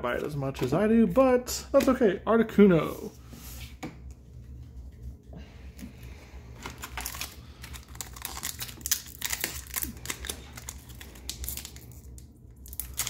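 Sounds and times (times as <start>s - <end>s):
foil pack crinkling: 6.6s - 13.0s.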